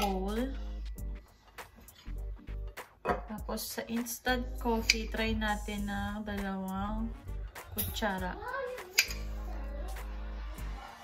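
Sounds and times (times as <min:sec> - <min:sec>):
background music with held notes: 0:00.0 - 0:11.0
sharp click: 0:09.0 - 0:09.2.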